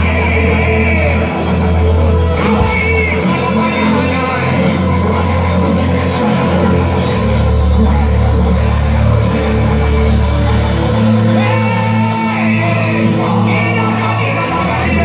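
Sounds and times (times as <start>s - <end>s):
people singing through microphones: 0.0s - 9.6s
keyboard: 0.0s - 15.0s
drums: 2.2s - 8.8s.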